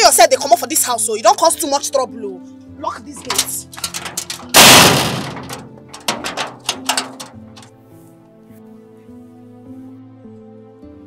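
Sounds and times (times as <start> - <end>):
background music with held notes: 0.0 - 4.5, 5.6 - 11.0
metal rattles and clacks: 3.2 - 7.7
steel gate clanging shut: 3.2 - 7.7.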